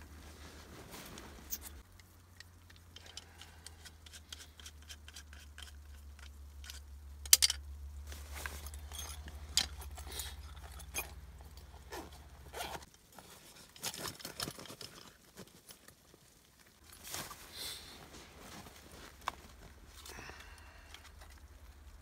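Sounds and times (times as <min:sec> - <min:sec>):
plastic gear clicking and rustling: 0:08.3 - 0:16.1.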